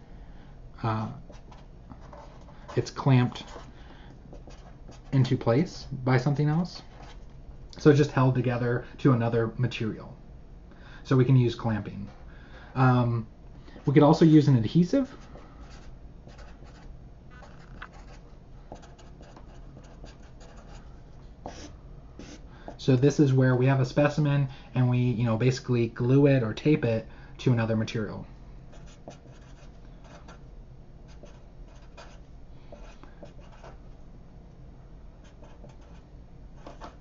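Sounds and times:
marker writing on paper: 1.3 - 3.7, 4.3 - 5.2, 15.1 - 20.8, 21.4 - 22.4, 28.7 - 30.4, 31.1 - 33.8, 35.2 - 36.0, 36.6 - 37.0.

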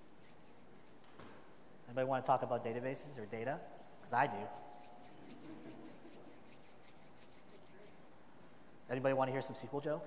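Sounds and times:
faint rustling strokes: 0.0 - 1.6, 2.6 - 9.8.

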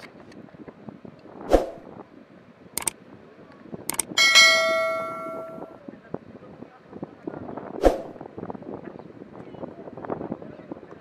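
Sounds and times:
outdoor background noise: 0.0 - 11.0
click: 3.9 - 4.1
bright bell ding: 4.2 - 5.8.

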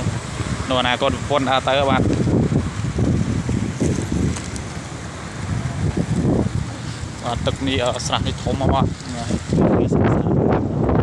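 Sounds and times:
wind buffeting microphone: 0.0 - 11.0.

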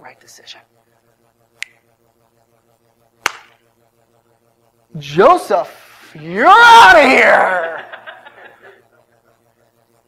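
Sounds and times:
faint steady hum: 0.0 - 10.0
hand slap: 3.2 - 3.6.

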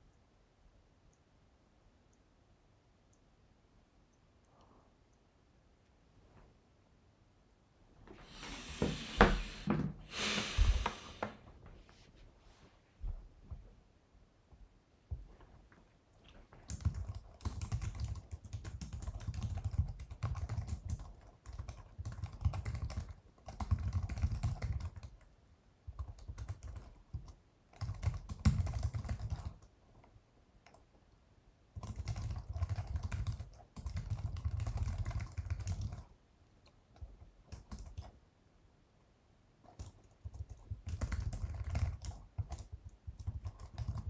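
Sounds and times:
typing on computer keyboard: 16.6 - 30.9, 31.7 - 36.1, 37.0 - 38.2, 39.6 - 44.0.

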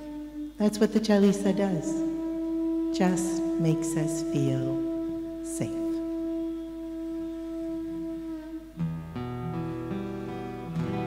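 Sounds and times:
strummed acoustic guitar: 8.8 - 11.0.

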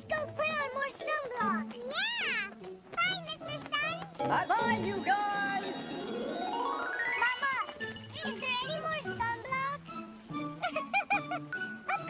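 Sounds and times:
light background music: 0.0 - 12.0.

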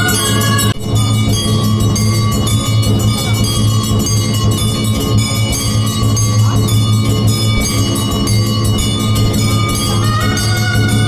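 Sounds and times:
deep pulsing beat: 0.0 - 11.0
temple bells clanging: 0.0 - 11.0.

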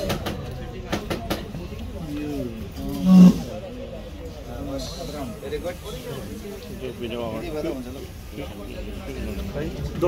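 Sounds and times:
men talking: 2.0 - 10.0.

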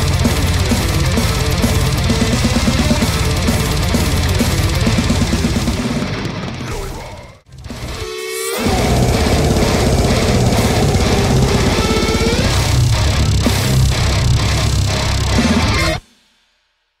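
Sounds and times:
fast drumming: 0.0 - 6.6, 8.6 - 16.1
distorted guitars: 0.0 - 16.0
heavy metal music: 0.0 - 16.0.

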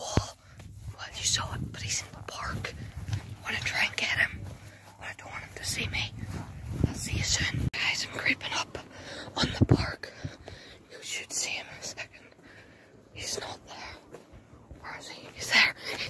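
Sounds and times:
boy whispering: 0.0 - 2.8, 3.4 - 4.4, 5.0 - 10.1, 10.9 - 12.3, 13.1 - 14.1, 14.8 - 16.0
low rumble on microphone: 0.0 - 10.8.

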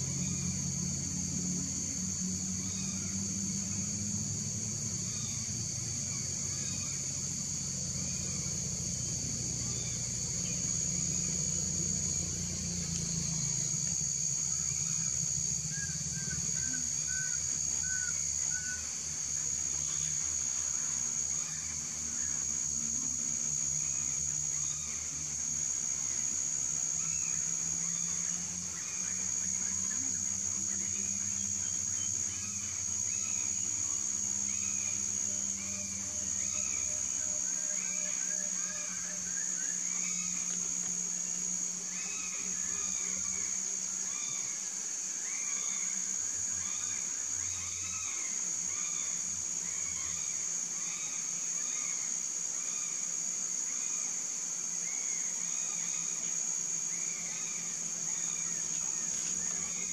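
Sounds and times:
low steady hum: 0.0 - 44.5
insect drone: 0.0 - 59.9.

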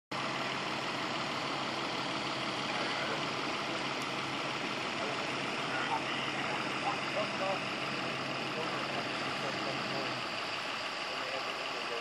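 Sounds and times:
engine idling: 0.1 - 12.0.

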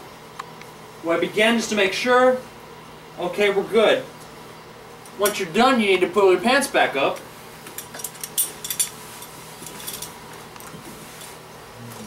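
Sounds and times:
light clinks: 7.8 - 10.2.

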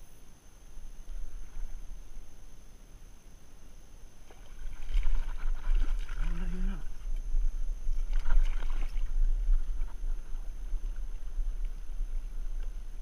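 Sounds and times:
low microphone rumble: 0.0 - 13.0
river water sloshing and splashing: 4.2 - 13.0.

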